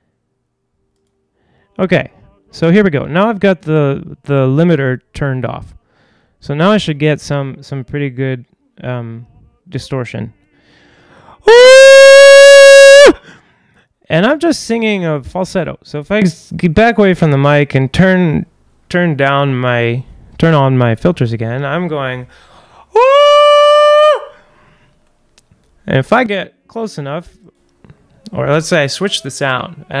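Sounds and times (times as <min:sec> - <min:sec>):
man singing distorted falsetto note: 0:11.4 - 0:13.2.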